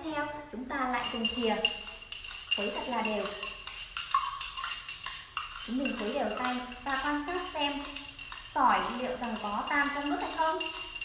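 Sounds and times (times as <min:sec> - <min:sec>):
spoon stirring pebbles in water: 0:01.0 - 0:11.0.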